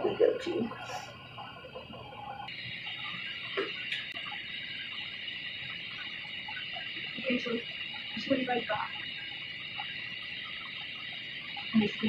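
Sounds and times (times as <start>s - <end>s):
high hiss: 2.4s - 12.0s.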